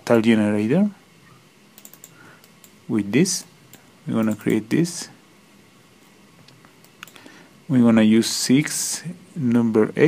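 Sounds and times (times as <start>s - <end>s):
computer keyboard typing: 1.8s - 2.8s, 3.7s - 4.6s.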